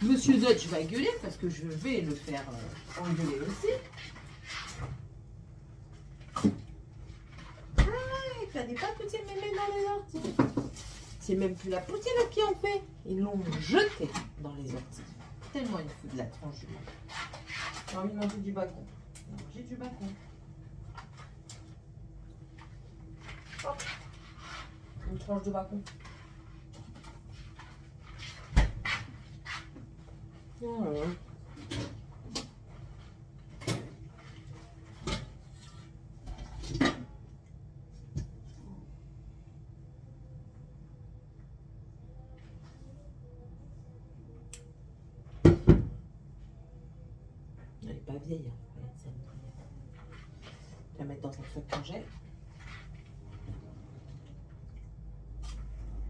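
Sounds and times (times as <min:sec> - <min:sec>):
rustling scrape: 0:00.0 - 0:05.1, 0:07.0 - 0:12.5, 0:13.3 - 0:18.5, 0:22.6 - 0:31.8, 0:49.4 - 0:54.1
faint steady hum: 0:18.2 - 0:56.0.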